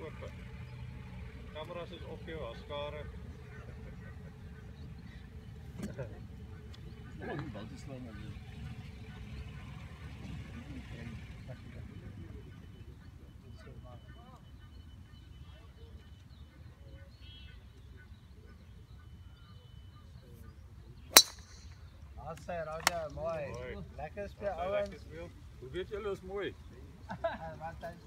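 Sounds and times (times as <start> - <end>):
golf club striking ball: 21.1 - 22.0, 22.7 - 23.1.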